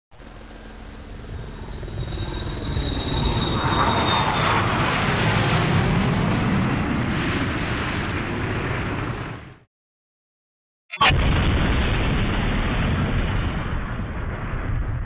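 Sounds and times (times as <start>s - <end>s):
thin high whistle: 1.6s - 4.4s.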